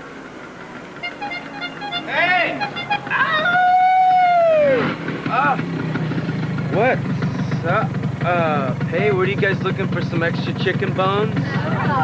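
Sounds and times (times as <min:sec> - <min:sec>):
motor scooter idling: 0:00.0 - 0:12.0.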